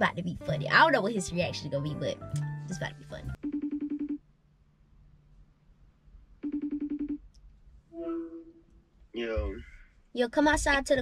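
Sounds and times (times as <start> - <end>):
person speaking: 0.0 - 3.4, 8.0 - 8.6, 9.2 - 11.0.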